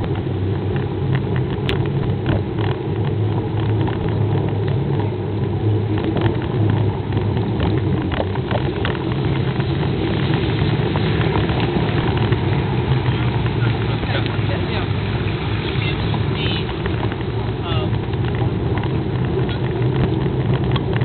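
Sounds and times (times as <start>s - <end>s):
voices of passing walkers: 0.0s - 21.0s
wind buffeting microphone: 0.0s - 21.0s.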